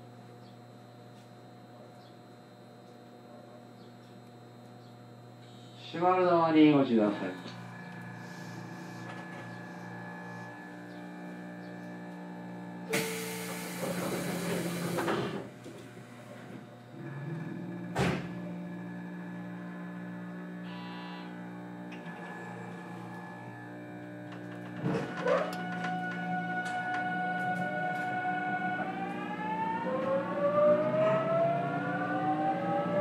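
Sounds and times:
train car hum with faint pulsing: 0.0s - 29.2s
loud hiss: 12.9s - 15.2s.

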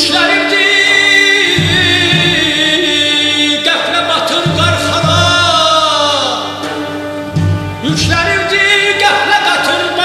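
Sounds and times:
string orchestra with lutes: 0.0s - 10.0s.

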